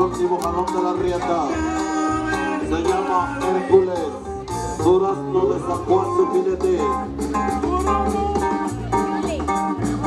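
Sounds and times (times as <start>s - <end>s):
music with steady beat and bass: 0.0s - 10.0s.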